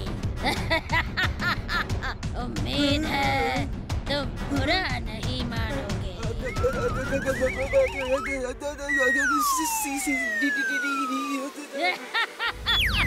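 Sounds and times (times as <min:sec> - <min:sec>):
background music: 0:00.0 - 0:13.0
warbling whistle-like sound effect: 0:06.4 - 0:11.7.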